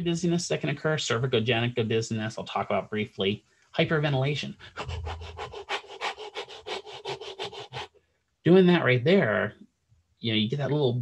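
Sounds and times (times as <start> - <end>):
man breathing fast and hard: 4.6 - 8.0.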